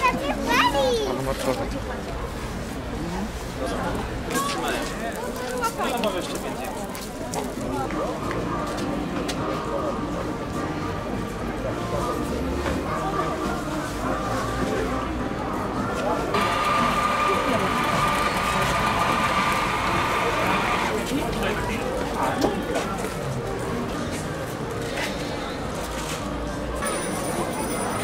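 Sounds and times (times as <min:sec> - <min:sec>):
crowd chattering: 0:00.0 - 0:28.0
music: 0:07.4 - 0:28.0.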